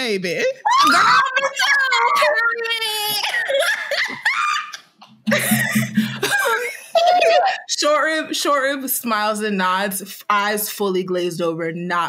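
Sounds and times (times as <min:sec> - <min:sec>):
people laughing and giggling: 0:00.7 - 0:07.7.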